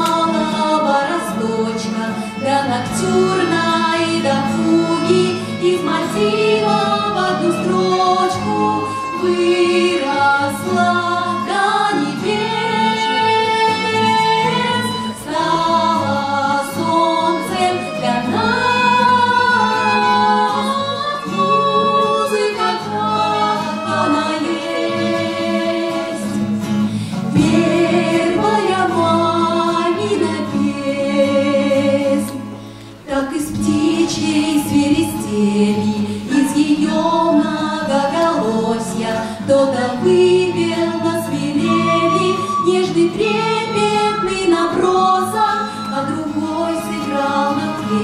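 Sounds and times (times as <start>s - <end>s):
acoustic guitar: 0.0s - 48.0s
violin: 0.0s - 48.0s
women singing: 0.0s - 48.0s.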